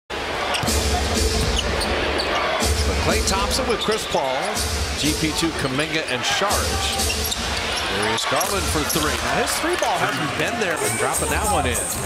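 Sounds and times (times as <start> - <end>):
crowd noise: 0.1 - 12.0
arena music: 0.2 - 12.0.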